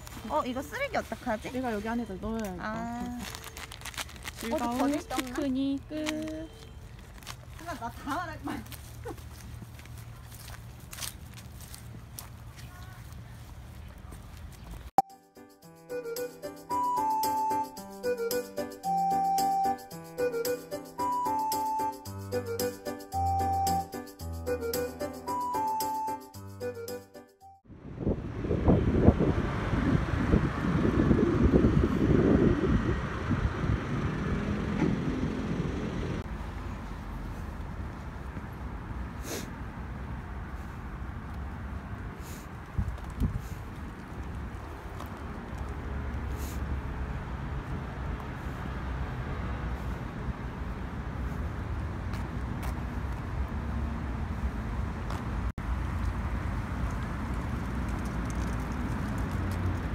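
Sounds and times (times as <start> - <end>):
footsteps on dry leaves: 0.0 - 14.9
background music: 15.0 - 27.6
wind buffeting microphone: 27.7 - 35.4, 42.6 - 45.5.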